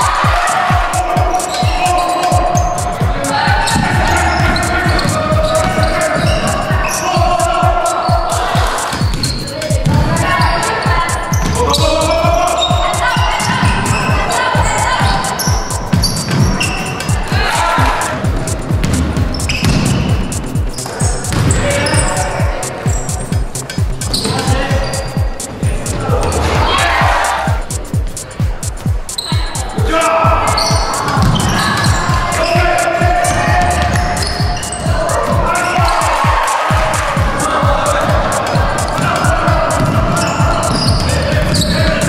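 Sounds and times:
fast beat music with bass: 0:00.0 - 0:42.0.

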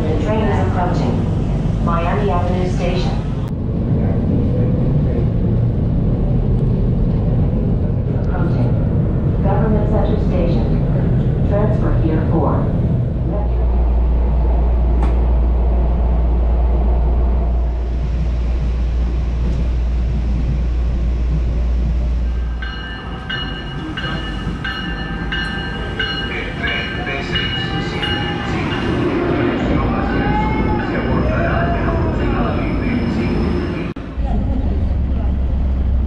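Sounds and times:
rail car low rumble: 0:00.0 - 0:36.0.

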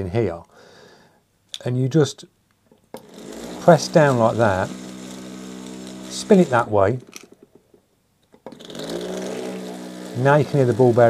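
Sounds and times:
mixer motor spinning up and humming: 0:03.0 - 0:07.3, 0:08.4 - 0:11.0.

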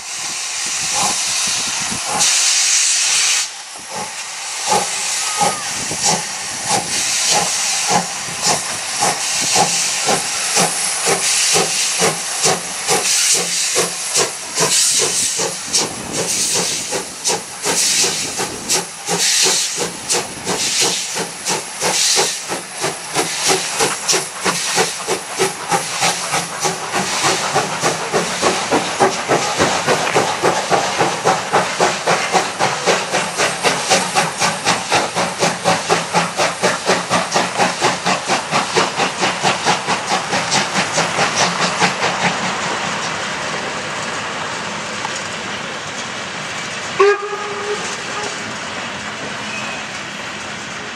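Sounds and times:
hiss of steam: 0:00.0 - 0:50.9
steam locomotive exhaust chuffs: 0:00.0 - 0:50.9.

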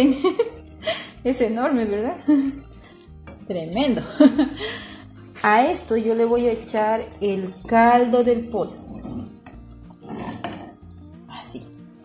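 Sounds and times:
ladle pouring broth: 0:00.0 - 0:12.0
liquid splashing and dripping: 0:00.0 - 0:12.0.

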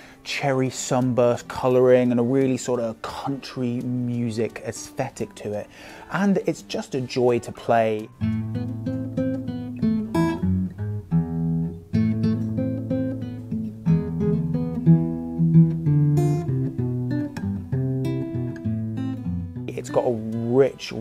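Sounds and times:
acoustic guitar picked and strummed: 0:00.0 - 0:21.0.

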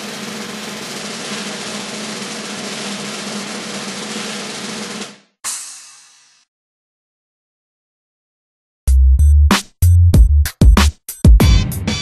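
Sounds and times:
snare drum roll: 0:00.0 - 0:06.0.

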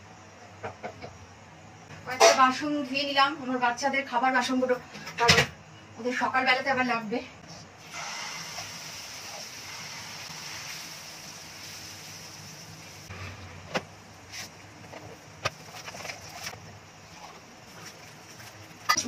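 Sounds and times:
batter sizzling in hot oil: 0:07.8 - 0:13.1.

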